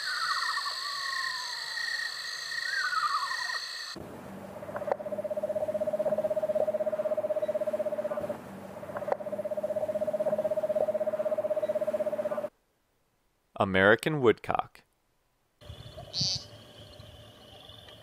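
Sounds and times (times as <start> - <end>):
screech owl trilling: 0.0 - 4.0, 5.0 - 8.3, 16.0 - 16.5.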